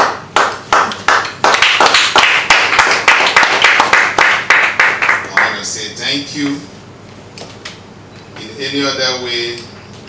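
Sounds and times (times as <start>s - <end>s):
audience applause: 0.7s - 5.5s.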